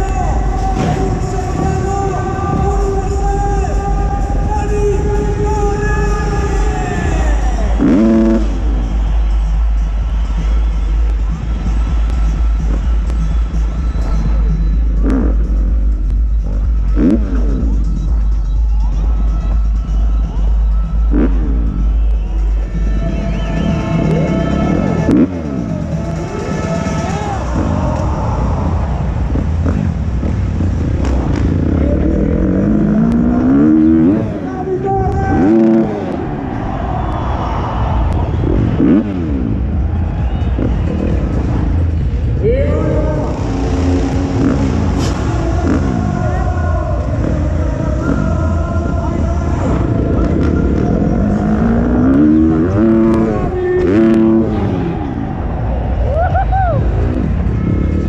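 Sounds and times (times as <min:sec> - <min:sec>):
motocross bike engine revving: 0:00.0 - 0:18.6, 0:20.8 - 0:22.0, 0:22.7 - 0:55.9
loud music over sound system: 0:00.0 - 0:58.0.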